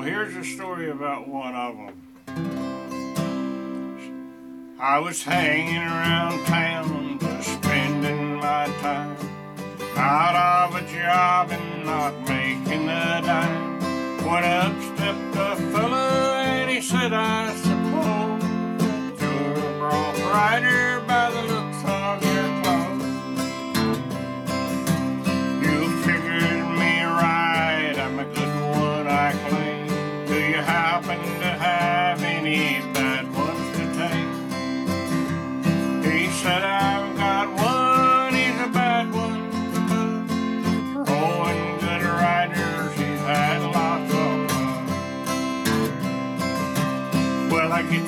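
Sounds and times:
man singing: 0:00.0 - 0:02.0, 0:04.8 - 0:23.5, 0:25.2 - 0:45.5, 0:47.1 - 0:48.0
acoustic guitar strumming: 0:00.0 - 0:48.0.

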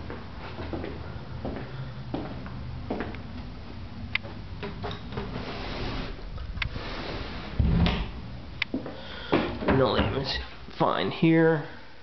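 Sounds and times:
steady low hiss: 0:00.0 - 0:12.0
dull low thump: 0:07.6 - 0:08.2.

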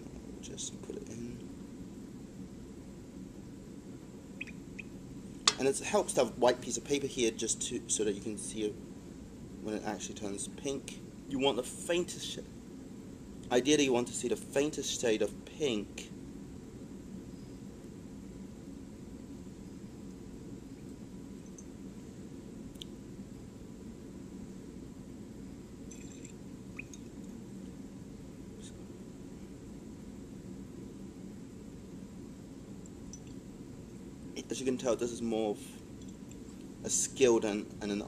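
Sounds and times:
liquid swirling in glass flask: 0:25.9 - 0:27.2.

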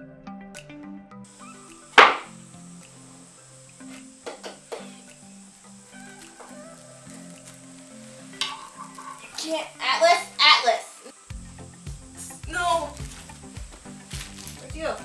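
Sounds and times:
soft background music: 0:00.0 - 0:15.0
sharp knock: 0:02.0 - 0:02.3.

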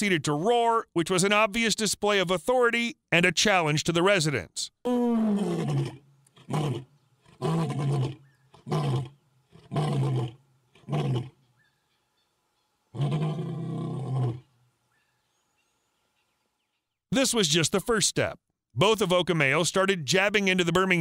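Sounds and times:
lion roaring: 0:05.1 - 0:11.4, 0:12.9 - 0:14.5.

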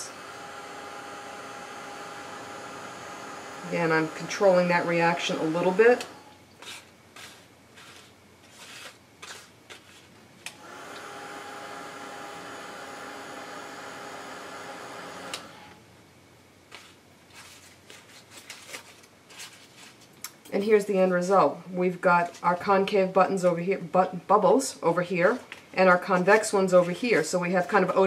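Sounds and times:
heat gun fan whining: 0:00.0 - 0:08.2, 0:10.4 - 0:15.9.

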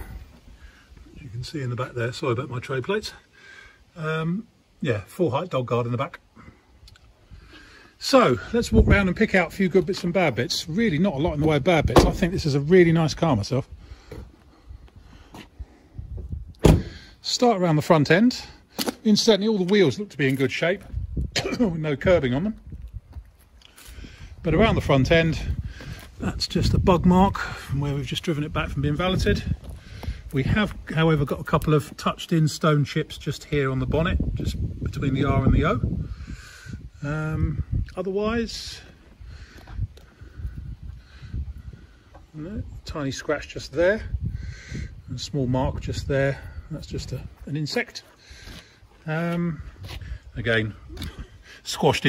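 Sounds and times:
faint footsteps: 0:14.0 - 0:16.4, 0:22.5 - 0:24.2, 0:28.8 - 0:31.0, 0:38.5 - 0:41.0, 0:47.1 - 0:50.3.

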